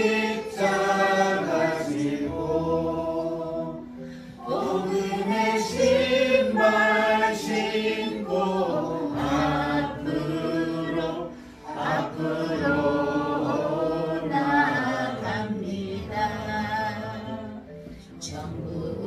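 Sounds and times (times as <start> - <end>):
slow hymn singing: 0.0 - 19.0.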